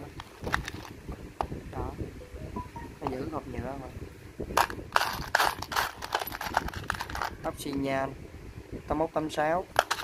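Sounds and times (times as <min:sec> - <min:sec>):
metal screws clinking and rattling: 0:05.0 - 0:07.4.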